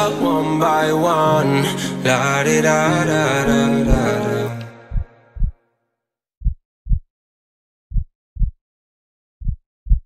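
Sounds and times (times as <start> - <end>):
slow heartbeat thumps: 4.8 - 5.6, 6.4 - 7.1, 7.9 - 8.6, 9.4 - 10.0.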